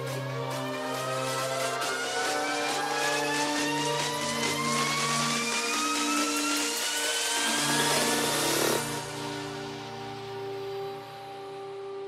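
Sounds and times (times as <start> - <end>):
electronic dance music: 0.0 - 11.3.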